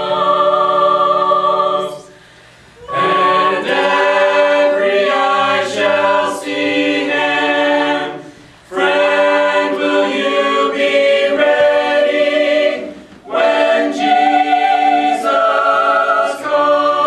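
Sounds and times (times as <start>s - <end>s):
a cappella choir singing: 0.0s - 17.0s.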